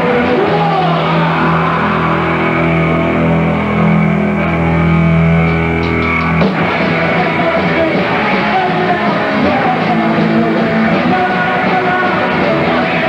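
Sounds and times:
distorted guitar chord ringing: 0:00.0 - 0:08.2
punk band playing live: 0:00.0 - 0:13.0.

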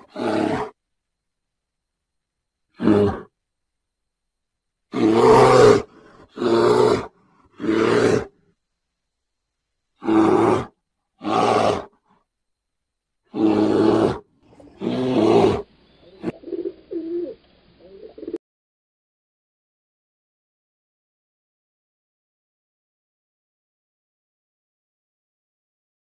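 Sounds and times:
bear roaring: 0:00.0 - 0:00.8, 0:02.7 - 0:03.3, 0:04.9 - 0:08.4, 0:10.0 - 0:12.0, 0:13.3 - 0:16.4.

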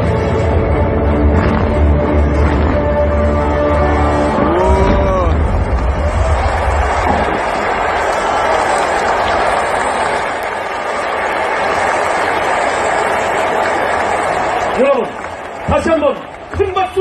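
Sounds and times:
crowd applauding and cheering: 0:00.0 - 0:17.0.

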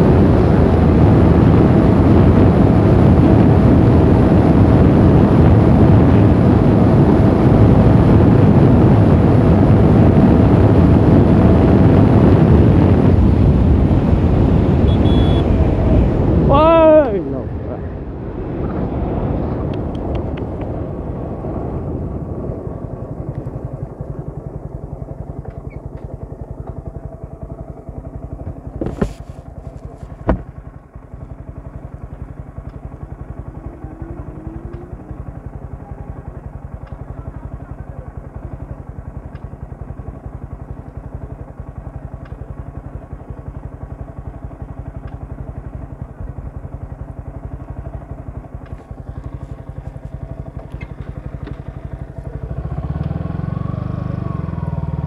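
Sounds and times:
motorcycle engine running: 0:00.0 - 0:55.0.

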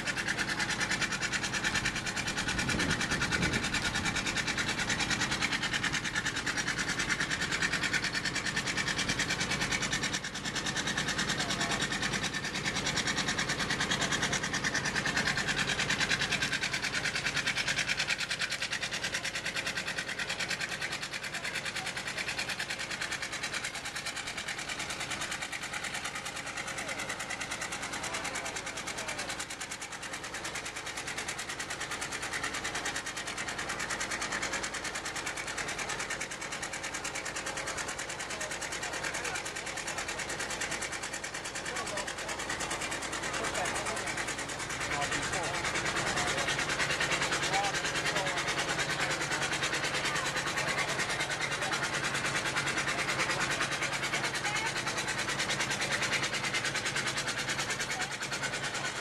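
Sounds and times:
steam traction engine running: 0:00.0 - 0:59.0.

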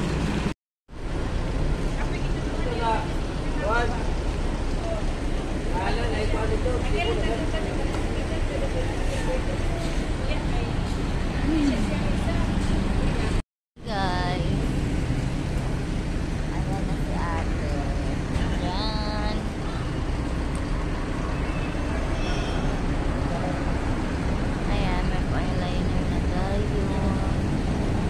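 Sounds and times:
street traffic rumble: 0:00.0 - 0:28.0
voices: 0:02.0 - 0:14.8, 0:16.5 - 0:20.6, 0:21.2 - 0:27.7.

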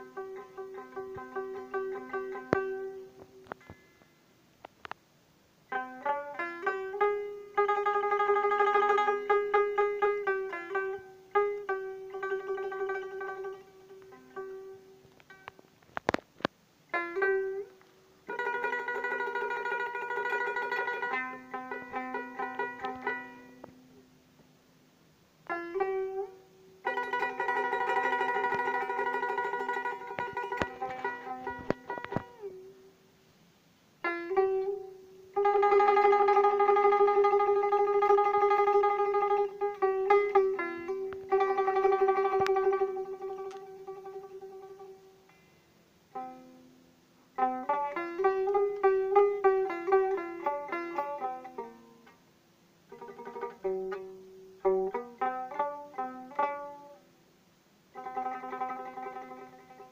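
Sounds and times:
plucked lute melody: 0:00.0 - 0:03.9, 0:05.7 - 0:16.2, 0:16.9 - 0:24.1, 0:25.4 - 0:32.9, 0:34.0 - 0:45.5, 0:46.1 - 0:52.2, 0:52.9 - 0:57.0, 0:57.9 - 0:59.9.

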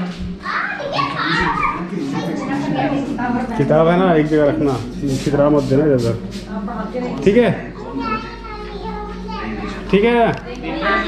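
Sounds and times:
children chattering: 0:00.4 - 0:04.8, 0:07.0 - 0:11.0.

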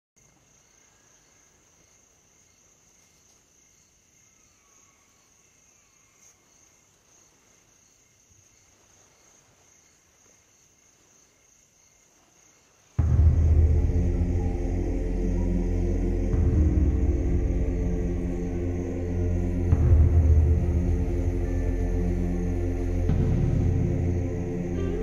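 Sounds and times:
night insects trilling: 0:00.2 - 0:25.0.

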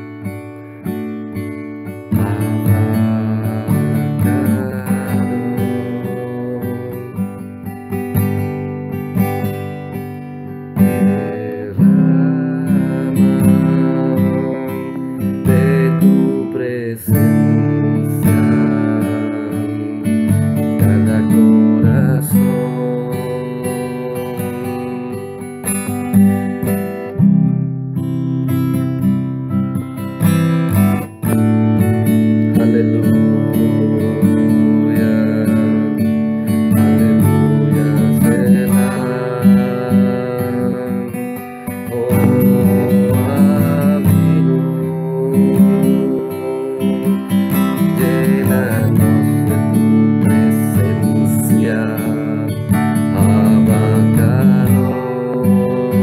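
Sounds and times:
acoustic guitar strumming chords: 0:00.0 - 0:56.0.

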